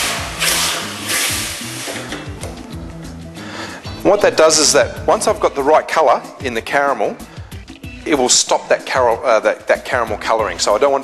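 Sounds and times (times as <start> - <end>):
hot pot hissing in water: 0.0 - 2.0
background music: 0.0 - 11.0.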